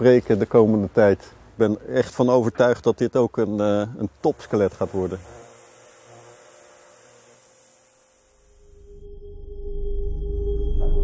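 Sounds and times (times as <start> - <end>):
pressure washer spraying: 4.4 - 8.9
low hum: 8.4 - 11.0.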